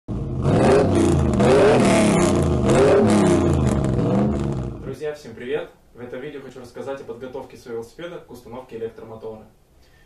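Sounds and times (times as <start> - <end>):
engine-like drone sweeping in pitch: 0.1 - 4.8.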